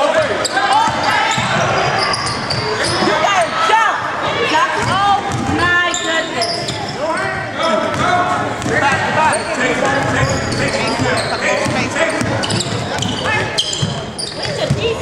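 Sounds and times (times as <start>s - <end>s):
sneakers squeaking: 0.0s - 3.6s, 4.2s - 15.0s
voices calling and shouting: 0.0s - 15.0s
basketball bouncing on court: 0.2s - 3.1s, 4.7s - 5.8s, 7.8s - 15.0s.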